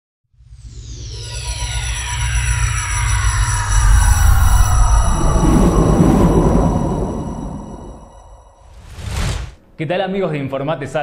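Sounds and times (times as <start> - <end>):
high tones gliding downward: 0.4 - 8.8
steady high tones: 0.4 - 8.8
deep electronic rumble: 0.6 - 8.6.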